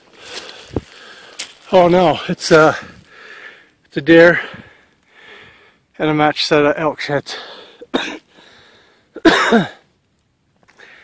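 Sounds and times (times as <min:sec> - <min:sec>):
man coughing: 0:07.9 - 0:08.2, 0:09.2 - 0:09.8.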